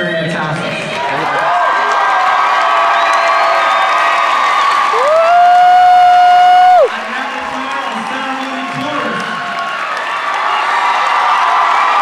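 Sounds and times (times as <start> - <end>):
crowd cheering and screaming: 0.8 - 12.0.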